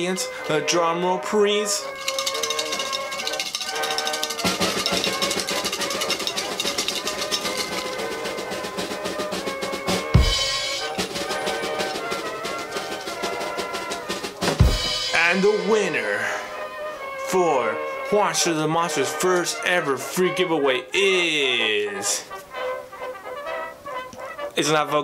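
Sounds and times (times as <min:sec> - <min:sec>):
musical backing: 0:00.0 - 0:25.0.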